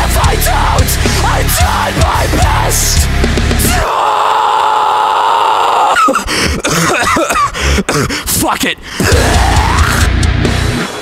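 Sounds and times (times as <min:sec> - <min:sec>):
heavy metal band music: 0:00.0 - 0:05.4, 0:08.4 - 0:11.0.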